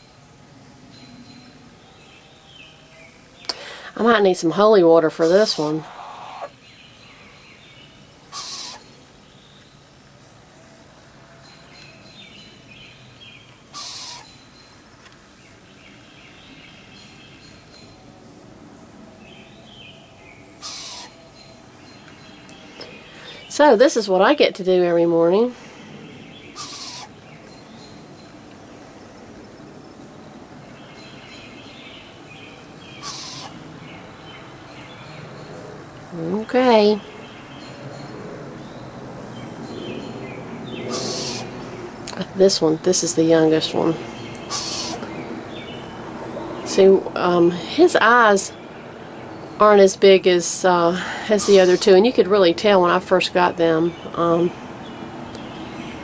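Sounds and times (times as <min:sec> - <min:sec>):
background hiss: 0:00.0 - 0:37.7
birds chirping: 0:00.0 - 0:56.0
faint bird chirps: 0:11.3 - 0:14.8, 0:26.0 - 0:28.4, 0:33.0 - 0:33.6.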